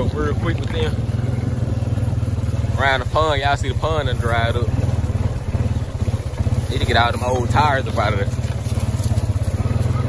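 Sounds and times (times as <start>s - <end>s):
atv engine running: 0.0s - 10.0s.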